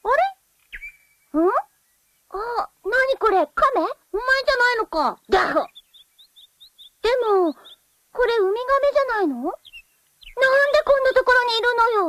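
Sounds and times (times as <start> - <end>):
thin high chirp: 0.7 - 1.3.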